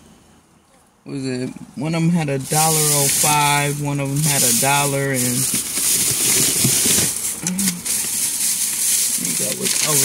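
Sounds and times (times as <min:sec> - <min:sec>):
plastic bag rustling and crinkling: 0:02.3 - 0:10.0.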